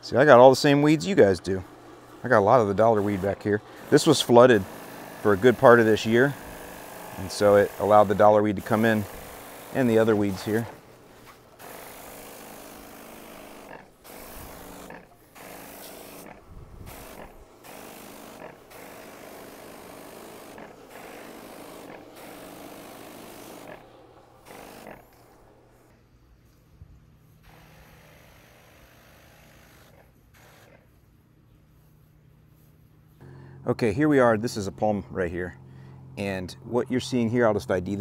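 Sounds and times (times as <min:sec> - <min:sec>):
sprayer nozzle hissing: 0:00.0 - 0:25.8
low steady hum: 0:30.2 - 0:38.0.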